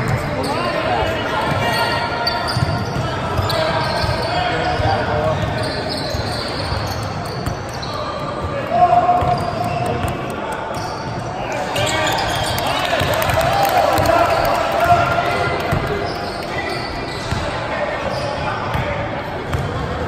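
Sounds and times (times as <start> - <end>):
voices echoing in hall: 0.0 - 20.0.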